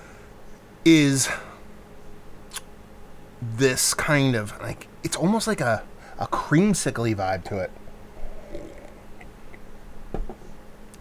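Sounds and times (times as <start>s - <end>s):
low steady hum: 0.0s - 11.0s
sharp click: 2.5s - 2.7s
person sipping from glass: 8.2s - 9.3s.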